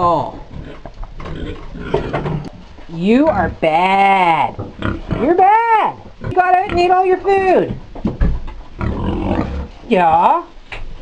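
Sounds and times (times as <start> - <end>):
pig grunting: 0.3 - 2.5, 4.2 - 5.4, 8.8 - 9.8.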